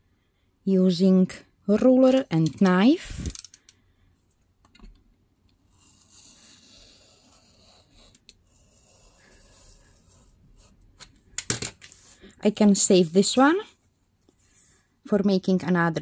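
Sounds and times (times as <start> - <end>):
blade cutting paper: 5.7 - 10.4.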